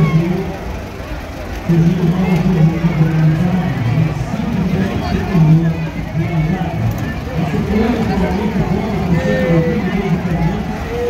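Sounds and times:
babble of voices: 0.0s - 11.0s.

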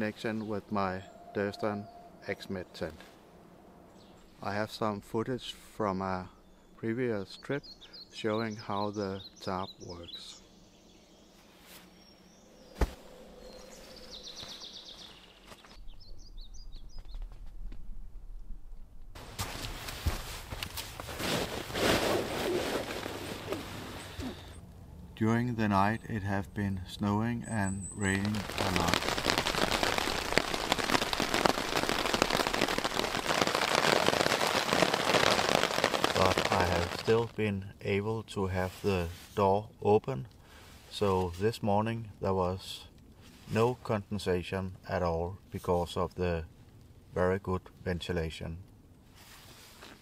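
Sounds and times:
low steady rumble: 23.7s - 27.5s
rain pattering on a tarp: 27.9s - 37.4s.

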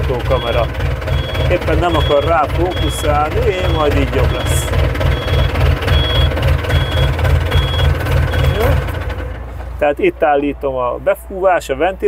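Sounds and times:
reversing beeper: 0.0s - 8.9s
diesel engine idling: 0.0s - 12.0s.

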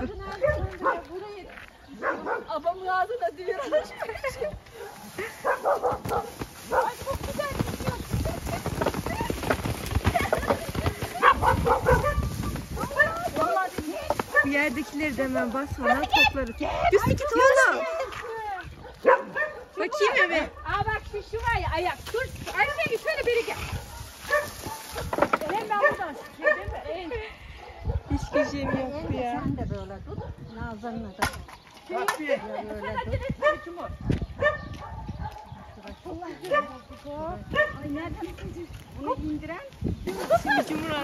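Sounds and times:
women's voices: 0.0s - 23.9s, 25.1s - 34.3s, 35.6s - 41.0s
branches rustling: 0.7s - 20.1s, 20.7s - 26.8s, 37.7s - 41.0s
plums dropping onto plastic tarp: 5.9s - 11.4s.

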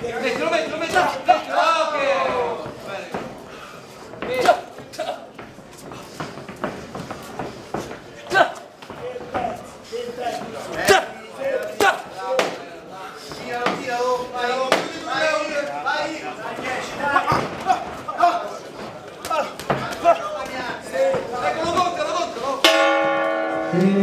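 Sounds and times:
boxing ring bell ringing: 22.6s - 24.0s.

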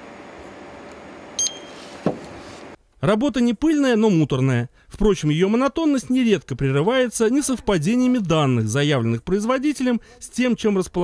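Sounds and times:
barcode scanner beep: 1.4s - 1.8s.

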